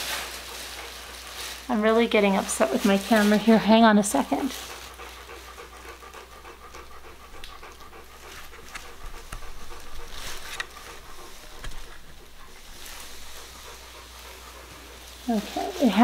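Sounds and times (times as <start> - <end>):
dog panting: 0.0 - 16.0.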